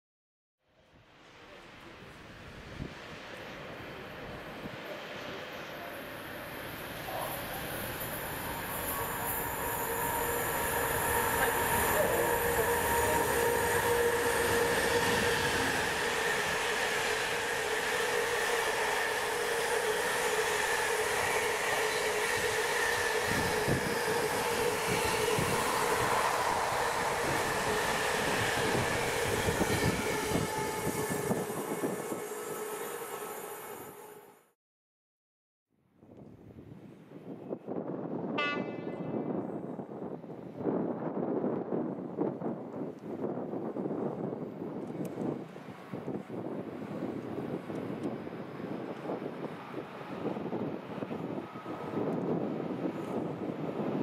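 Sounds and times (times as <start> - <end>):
freight train passing: 1.0 - 34.5, 37.2 - 54.0.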